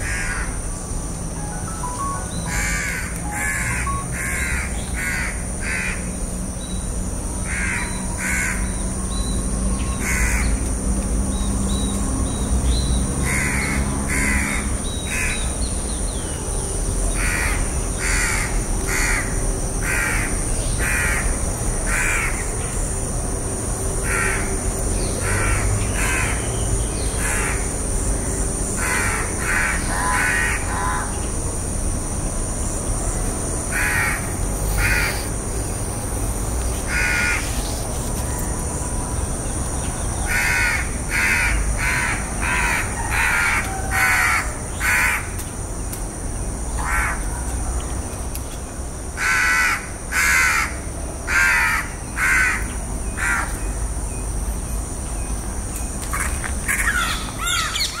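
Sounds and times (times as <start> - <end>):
crow cawing: 0.0 - 0.6, 2.5 - 6.2, 7.5 - 8.8, 10.0 - 10.5, 13.2 - 15.4, 17.1 - 22.5, 25.2 - 26.5, 28.8 - 31.2, 33.7 - 35.3, 36.9 - 37.5, 40.3 - 45.4, 46.8 - 47.4, 49.2 - 53.5, 56.2 - 58.0.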